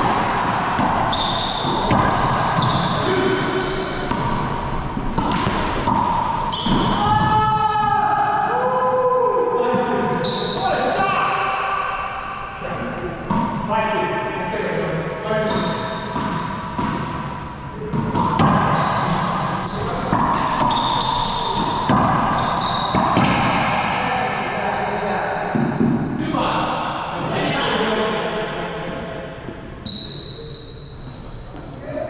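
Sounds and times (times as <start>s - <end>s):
sneakers squeaking on wood floor: 0.0s - 7.4s, 10.1s - 10.8s, 15.4s - 23.6s, 29.5s - 31.8s
players' voices: 0.0s - 30.6s
racquetball smacking off walls: 4.1s - 7.0s, 17.8s - 23.9s.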